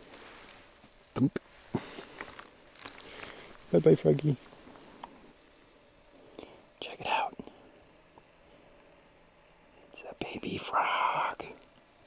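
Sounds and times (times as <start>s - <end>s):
person whispering: 6.8s - 7.5s, 9.9s - 11.6s.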